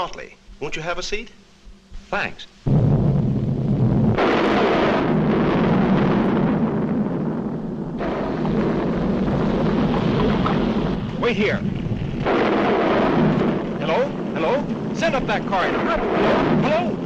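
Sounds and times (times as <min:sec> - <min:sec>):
cartoon volcano eruption rumble: 0:02.7 - 0:17.0.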